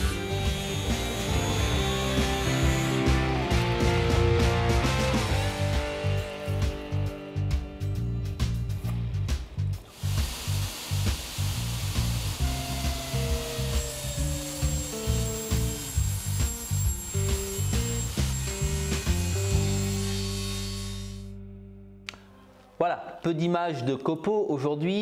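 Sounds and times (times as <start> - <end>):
power saw cutting wood: 0.0 - 5.7, 9.9 - 21.3
rhythmic background music: 0.0 - 20.9.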